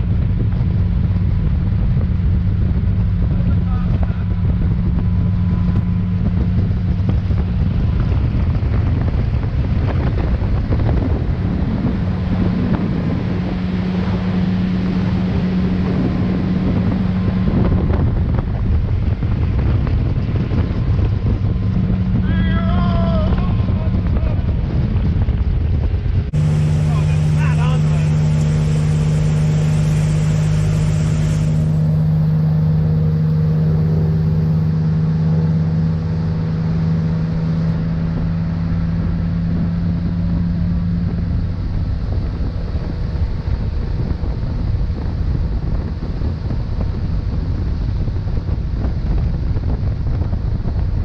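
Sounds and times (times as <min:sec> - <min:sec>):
churning wake water: 0:00.0 - 0:51.0
motorboat engine drone: 0:00.0 - 0:51.0
wind on microphone: 0:00.0 - 0:51.0.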